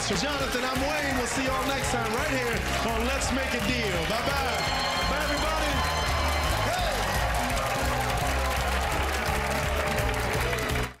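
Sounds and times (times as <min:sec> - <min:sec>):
audience applause and cheering: 0:00.0 - 0:11.0
upbeat theme music: 0:00.0 - 0:11.0.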